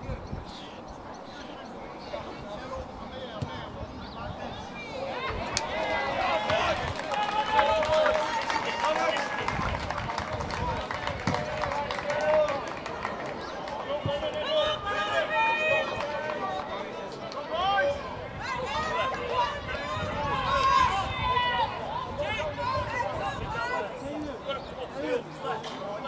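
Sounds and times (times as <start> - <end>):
people shouting and calling: 4.4 - 9.6, 13.5 - 26.0.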